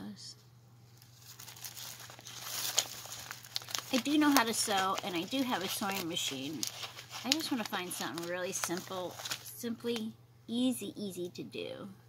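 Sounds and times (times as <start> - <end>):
plastic packaging crinkling: 0.9 - 9.6.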